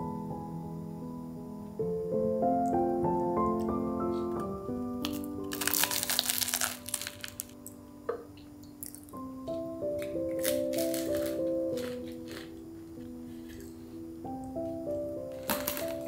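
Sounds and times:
soft keyboard music: 0.0s - 16.0s
crunchy bread chewing: 5.0s - 7.6s, 10.0s - 13.8s, 15.3s - 16.0s.

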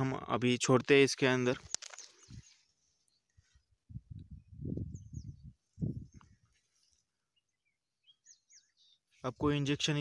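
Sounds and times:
high falling bird chirps: 1.4s - 9.7s.

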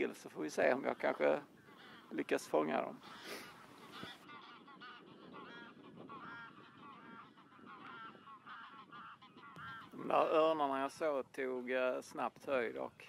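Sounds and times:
geese honking: 0.0s - 10.9s.

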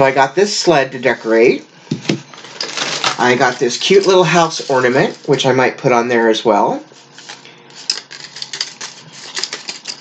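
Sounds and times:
crinkly packaging rustling: 2.3s - 5.4s.

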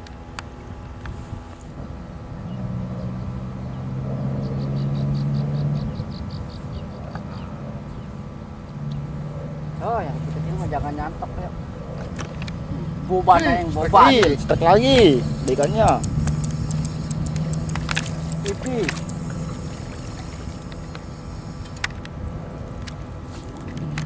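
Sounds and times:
low motor hum: 0.0s - 24.0s
faint high ticks: 14.9s - 22.2s.

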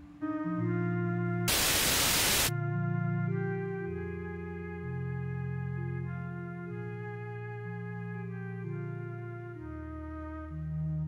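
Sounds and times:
loud static hiss: 1.5s - 2.5s.

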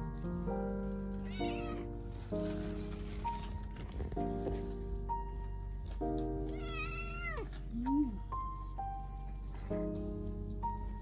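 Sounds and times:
background music with held notes: 0.0s - 11.0s
cat meowing: 1.2s - 1.9s, 6.5s - 7.5s.

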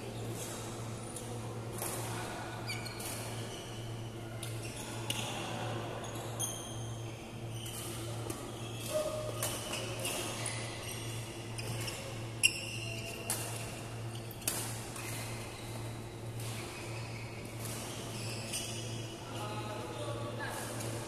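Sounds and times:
shoes squeaking on court floor: 2.7s - 19.2s.

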